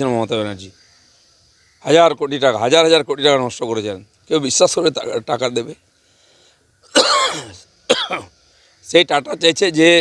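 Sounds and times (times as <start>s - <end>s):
man coughing: 6.9s - 8.3s.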